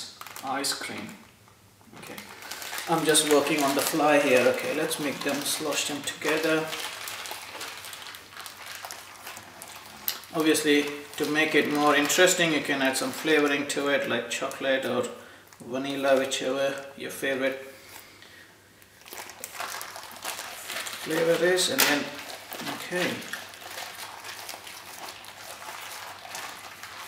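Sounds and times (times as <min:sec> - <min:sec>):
plastic bag crinkling and squishing: 0:00.0 - 0:18.1, 0:18.7 - 0:27.0.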